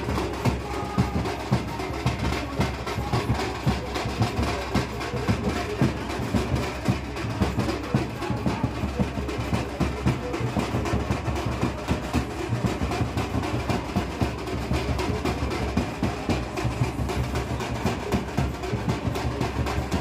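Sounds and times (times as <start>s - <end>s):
deep drum beats: 0.0s - 20.0s
rapid cracking snare drum: 0.0s - 20.0s.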